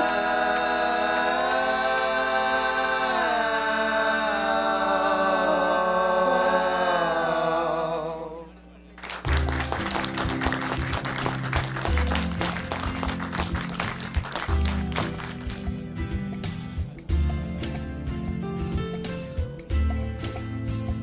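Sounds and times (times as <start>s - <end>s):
music with bass line: 9.3s - 21.0s.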